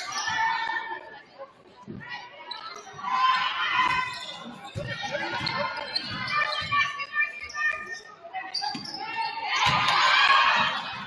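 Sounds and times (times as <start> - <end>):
voices echoing in a gym: 0.0 - 11.0.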